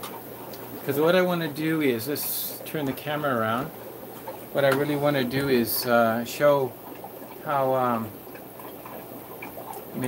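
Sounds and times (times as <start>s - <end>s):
running fish tanks: 0.0s - 10.0s.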